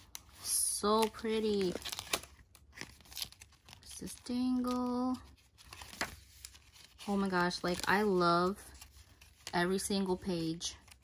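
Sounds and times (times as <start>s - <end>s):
paper pages rustling: 0.0s - 11.0s.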